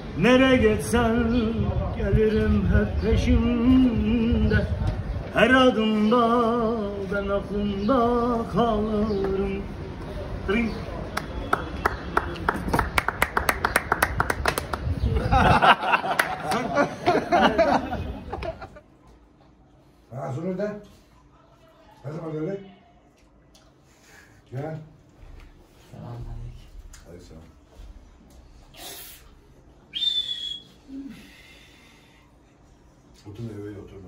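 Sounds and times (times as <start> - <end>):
rhythmic hand clapping: 11.1 - 15.0, 16.0 - 17.2
breathy hiss: 28.7 - 29.5, 30.9 - 32.5
person whistling: 29.9 - 31.1.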